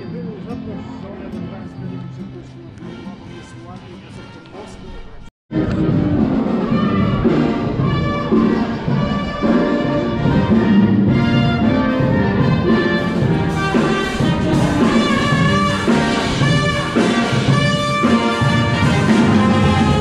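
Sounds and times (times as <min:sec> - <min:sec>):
brass band playing: 0:05.5 - 0:20.0.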